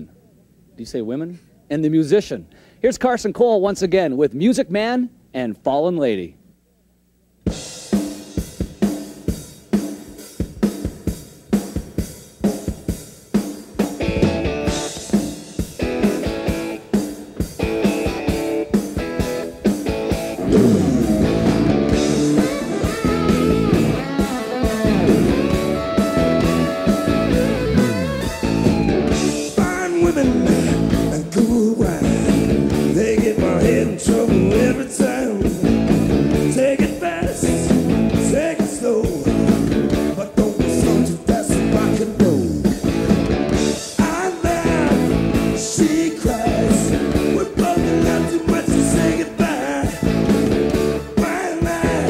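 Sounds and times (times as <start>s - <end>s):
drums beating: 7.4s - 52.0s
rock band playing: 7.5s - 52.0s
electric guitar: 13.8s - 52.0s.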